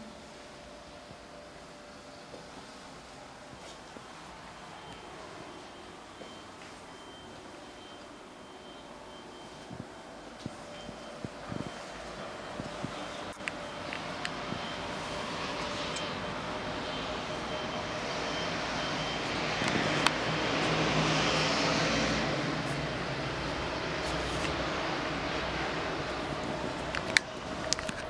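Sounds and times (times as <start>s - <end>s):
city traffic noise: 0.0s - 28.0s
vehicle passing by: 18.1s - 26.6s.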